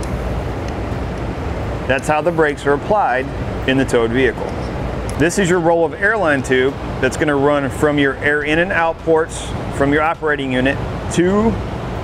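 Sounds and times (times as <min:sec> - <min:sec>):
low room noise rumble: 0:00.0 - 0:12.0.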